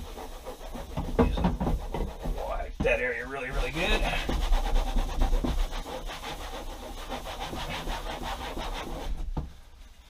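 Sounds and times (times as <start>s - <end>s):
paper towel rubbing wall panel: 0.0s - 10.0s.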